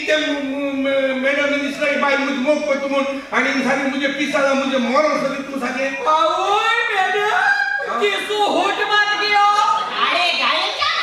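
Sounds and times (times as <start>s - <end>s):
man speaking into a microphone: 0.0s - 9.8s.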